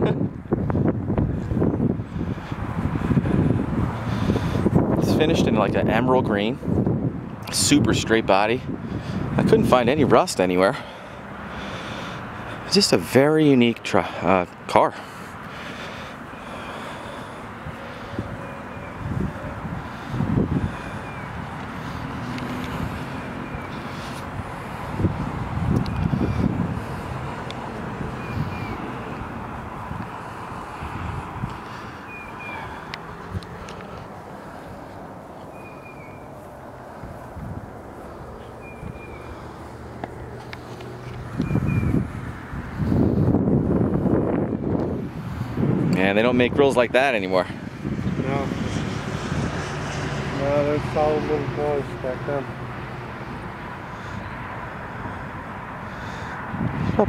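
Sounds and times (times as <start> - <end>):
short bird calls: 31.7 - 32.9, 35.4 - 36.4.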